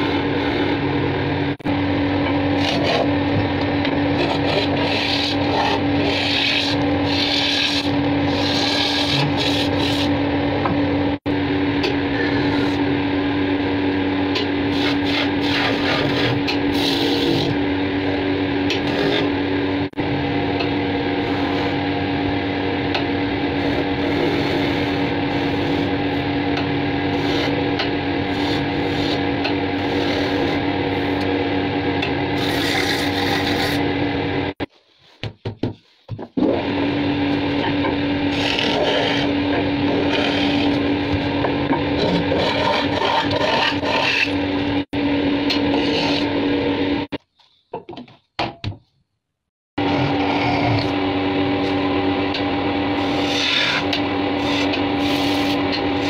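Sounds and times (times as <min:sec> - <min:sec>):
wood lathe motor humming: 0:00.0 - 0:11.2, 0:22.8 - 0:34.6, 0:36.4 - 0:47.1, 0:49.8 - 0:56.0
turning tool scraping wood: 0:02.5 - 0:03.2, 0:04.1 - 0:10.2, 0:14.7 - 0:17.6, 0:18.7 - 0:19.4, 0:28.2 - 0:31.3, 0:32.3 - 0:33.9, 0:37.3 - 0:44.5, 0:45.5 - 0:46.4, 0:49.9 - 0:51.0, 0:53.0 - 0:56.0.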